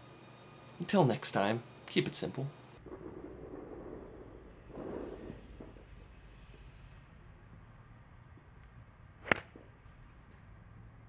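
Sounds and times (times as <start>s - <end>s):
golf club swish: 9.2s - 9.5s
golf club striking ball: 9.2s - 9.7s.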